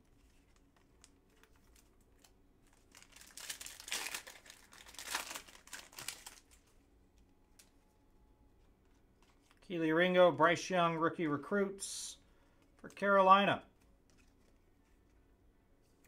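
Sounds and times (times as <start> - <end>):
foil wrapper crinkling and tearing: 0.0 - 6.7.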